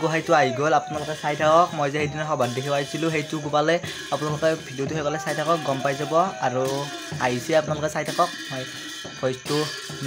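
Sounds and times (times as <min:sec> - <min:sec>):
rhythmic rattling percussion: 0:00.0 - 0:10.0
people singing: 0:04.6 - 0:07.3.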